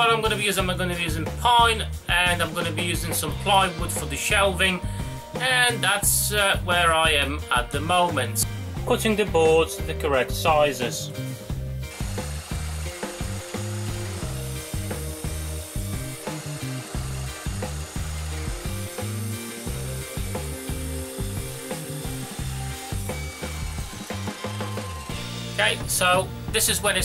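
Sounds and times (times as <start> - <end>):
mitre saw cutting wood: 11.8 - 25.6.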